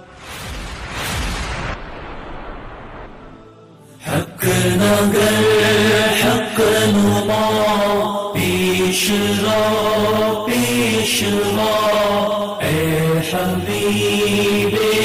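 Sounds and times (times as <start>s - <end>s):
devotional chanting: 3.4s - 15.0s.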